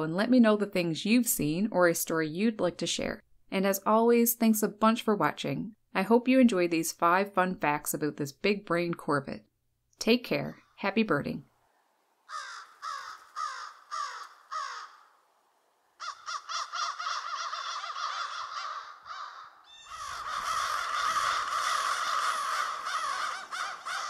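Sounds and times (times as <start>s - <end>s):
crows cawing: 12.3s - 15.3s, 16.0s - 24.0s.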